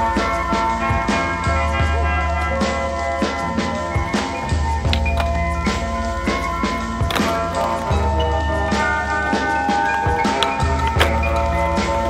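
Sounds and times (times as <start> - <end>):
music playing: 0.0 - 12.0
skateboard wheels rolling on concrete: 0.0 - 12.0
skateboard popping: 0.2 - 12.0
skateboard landing clack: 4.0 - 12.0.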